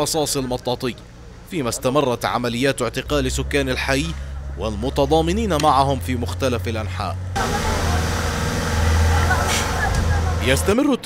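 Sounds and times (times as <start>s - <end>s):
truck engine rumble: 0.0s - 11.0s
faint shouting voices: 7.4s - 10.7s
water jet hissing: 7.4s - 10.7s.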